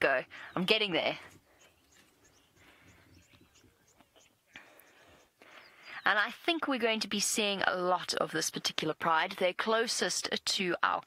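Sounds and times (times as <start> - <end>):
small bird chirping: 0.2 - 6.3.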